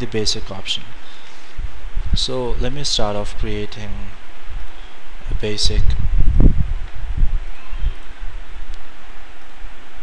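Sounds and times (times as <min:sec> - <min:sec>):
microphone background hiss: 0:00.0 - 0:10.0.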